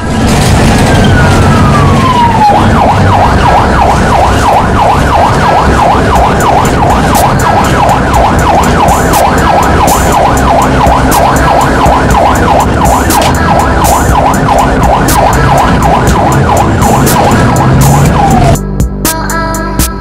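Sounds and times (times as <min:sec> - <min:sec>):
engine running: 0:00.0 - 0:19.1
ambulance siren wail and yelp: 0:00.4 - 0:18.7.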